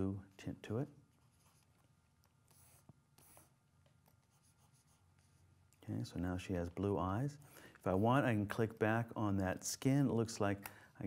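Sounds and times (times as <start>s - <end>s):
stylus scratching on tablet: 1.1s - 5.8s.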